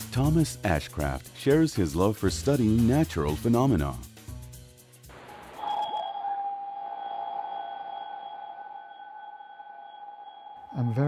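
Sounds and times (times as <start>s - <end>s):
steady electronic tone: 5.1s - 11.0s.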